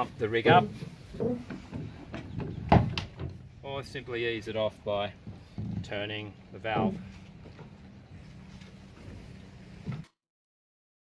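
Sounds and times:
pump handle strokes: 0:00.0 - 0:02.3.

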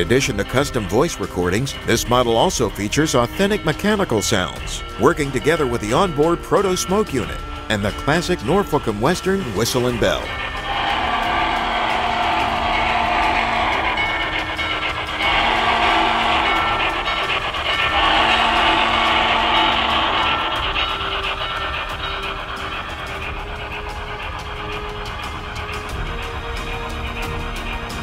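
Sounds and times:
background music: 0:00.0 - 0:28.0
steam whistle blasts: 0:00.0 - 0:28.0.

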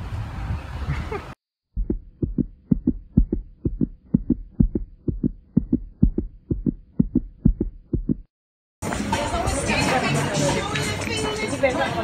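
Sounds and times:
fast heartbeat thuds: 0:01.7 - 0:08.3.

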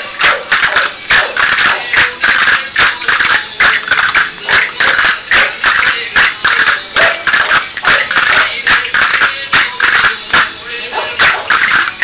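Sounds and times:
folk dance music: 0:00.0 - 0:12.0
sharp rhythmic clicks: 0:00.0 - 0:12.0.

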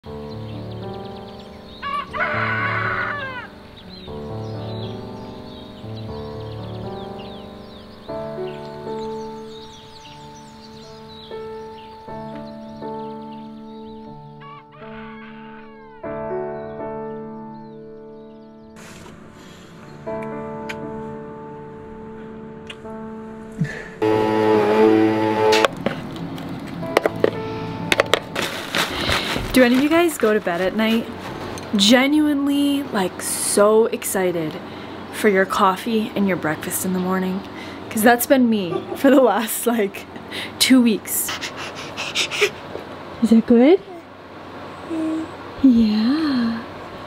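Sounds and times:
soft background music: 0:00.1 - 0:41.3
rooster crowing: 0:01.8 - 0:03.6, 0:14.4 - 0:16.1.

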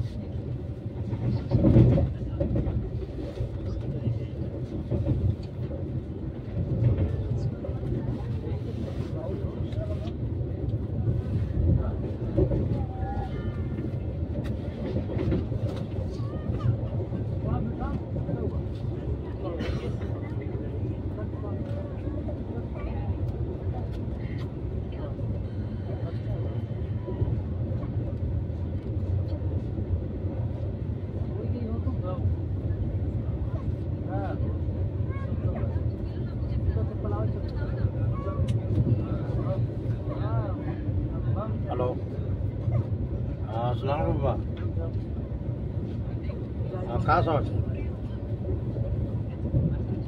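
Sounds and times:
train wheels rumbling on rails: 0:00.0 - 0:50.0.

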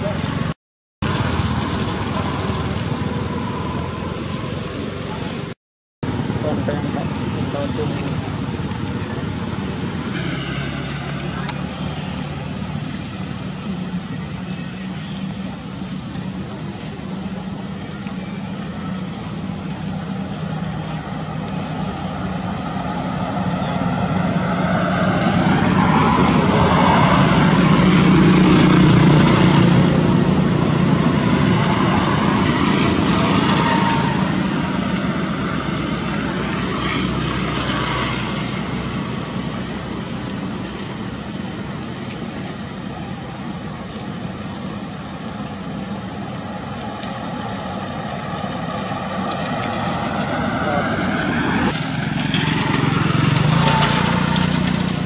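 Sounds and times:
vehicle engine passing by: 0:18.0 - 0:40.8, 0:46.8 - 0:55.0.

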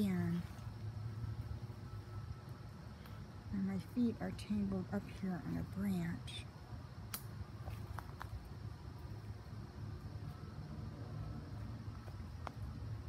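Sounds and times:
faint sharp clicks: 0:07.1 - 0:07.3.

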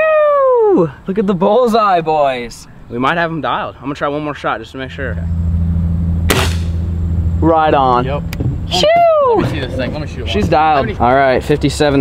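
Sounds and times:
vehicle engine idling: 0:02.4 - 0:12.0
air rifle shot crack: 0:06.2 - 0:06.9.

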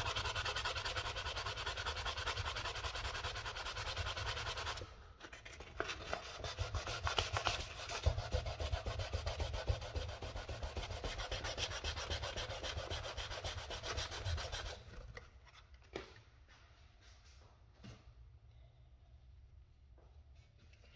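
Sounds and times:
sandpaper rubbing on plastic: 0:00.0 - 0:04.9, 0:06.0 - 0:14.9.

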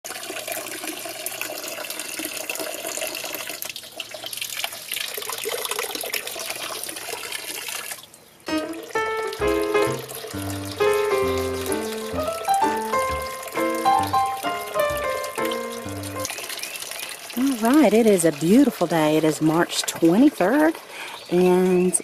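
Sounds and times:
fountain water running: 0:00.1 - 0:22.0
melody of pitched notes: 0:08.5 - 0:16.3.

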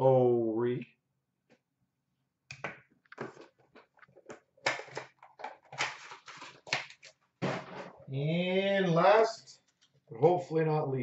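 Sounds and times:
packaging rustles and crinkles: 0:03.2 - 0:07.2.

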